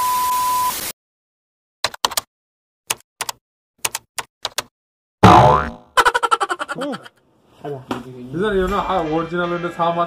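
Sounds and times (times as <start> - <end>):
cartoon boing: 5.2 - 6.3.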